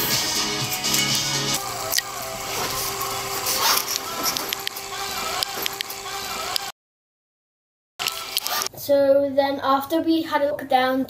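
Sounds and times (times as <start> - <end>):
steady shop hum: 0.0 - 6.8, 8.0 - 9.0.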